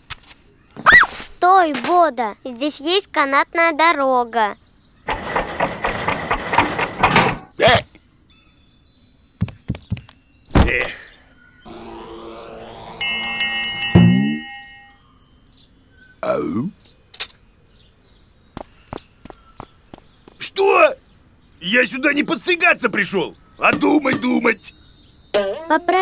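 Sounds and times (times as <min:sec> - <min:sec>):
cartoon rattling rush: 0:05.1 - 0:07.5
sharp knocks: 0:05.1 - 0:07.5, 0:13.9 - 0:14.9
wordless vocal sounds: 0:10.6 - 0:13.5
rising sweep with chiming tones: 0:11.2 - 0:18.2.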